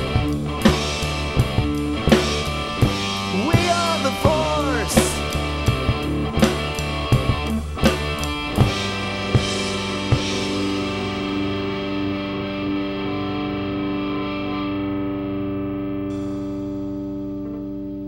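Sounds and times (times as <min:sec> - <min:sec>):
distorted electric guitar chord: 0:00.0 - 0:18.0.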